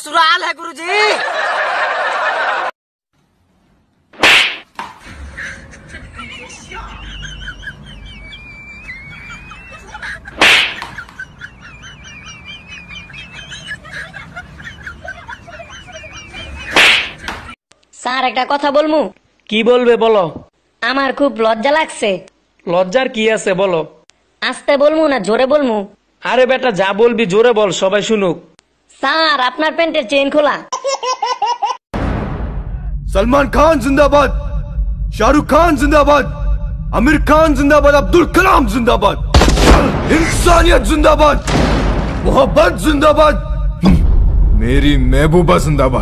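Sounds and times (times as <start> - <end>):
woman laughing: 5.0 - 17.6
birds chirping: 6.8 - 17.5
loud sudden hit: 31.9 - 46.0
low rumble: 32.0 - 46.0
rushing noise: 32.0 - 46.0.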